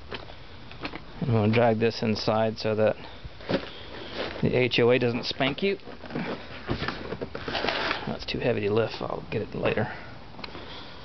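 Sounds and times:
rustling handling noise: 3.0s - 9.8s
man breathing with effort: 9.8s - 11.0s.

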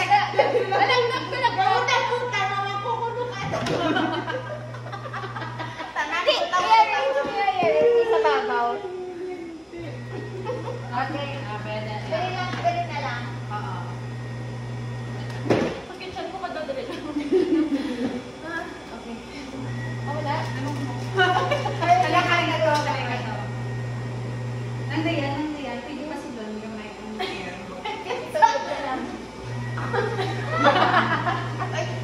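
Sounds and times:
people talking: 0.0s - 14.3s, 15.9s - 32.0s.

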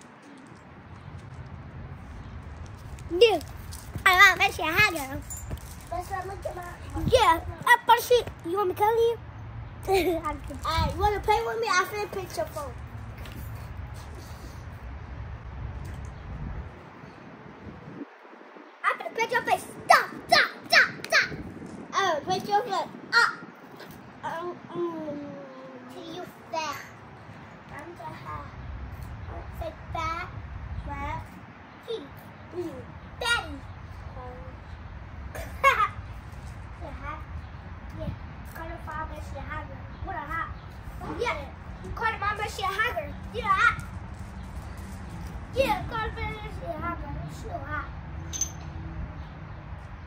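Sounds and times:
girl's high-pitched voice: 3.1s - 9.2s, 9.8s - 12.8s, 18.8s - 27.0s, 27.7s - 28.6s, 29.3s - 34.6s, 36.8s - 43.9s, 45.5s - 47.9s.

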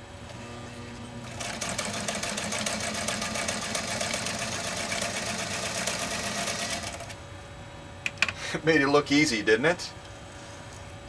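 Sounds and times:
sewing machine stitching leather: 1.2s - 7.2s.

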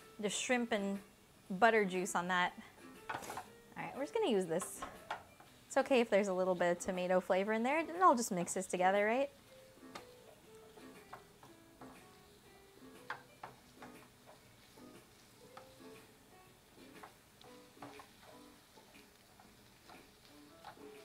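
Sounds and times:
soft plucked background music: 0.0s - 21.0s
utensil stirring food in bowl: 16.8s - 21.0s.

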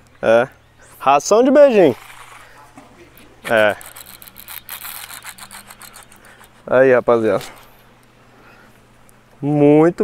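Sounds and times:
fishing reel clicking: 3.5s - 6.5s.

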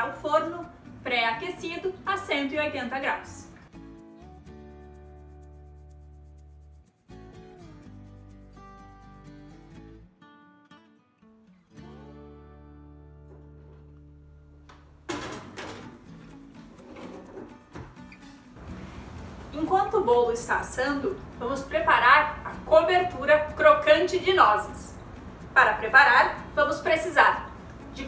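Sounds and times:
acoustic guitar music: 0.0s - 28.0s.

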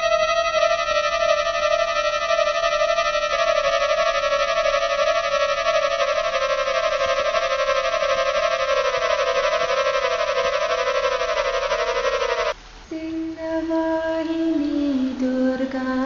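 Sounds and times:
warbling electronic tone: 0.0s - 12.6s.

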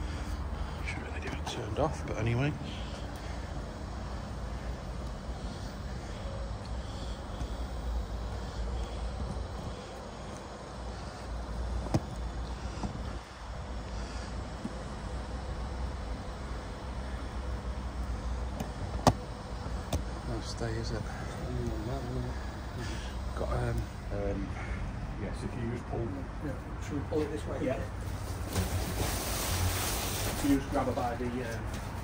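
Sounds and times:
low outdoor rumble: 0.0s - 32.0s.

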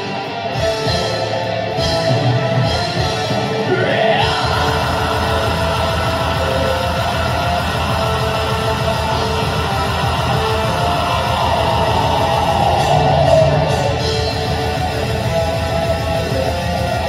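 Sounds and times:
distorted electric guitars: 0.0s - 17.0s
fast steady drums: 0.6s - 17.0s
yelled vocals: 2.5s - 17.0s.

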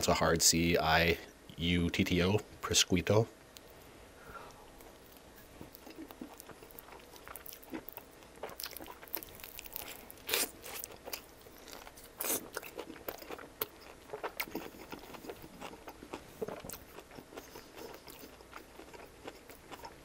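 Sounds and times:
chewing crisp crust: 4.7s - 20.0s.

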